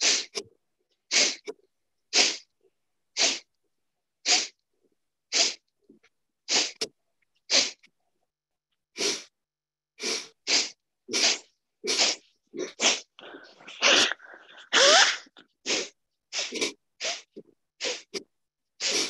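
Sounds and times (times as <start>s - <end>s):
forceful nasal exhalations: 0.0s - 0.4s, 1.1s - 2.5s, 3.2s - 3.5s, 4.2s - 4.6s, 5.3s - 5.6s, 6.5s - 6.9s, 7.5s - 7.9s, 8.9s - 9.4s, 10.0s - 19.0s.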